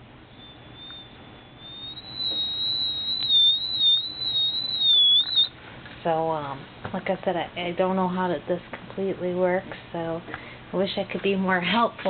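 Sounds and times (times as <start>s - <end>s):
metal detector whine: 0.0s - 5.5s.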